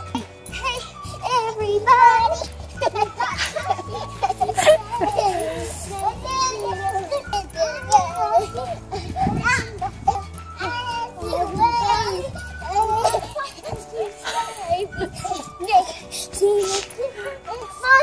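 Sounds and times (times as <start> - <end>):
pop music with bass line: 0.0 - 13.2
girls shouting and chattering: 0.0 - 18.0.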